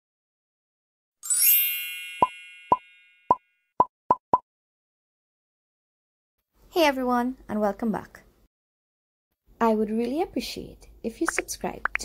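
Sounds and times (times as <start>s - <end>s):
ringing bell-like chime: 1.2s - 3.5s.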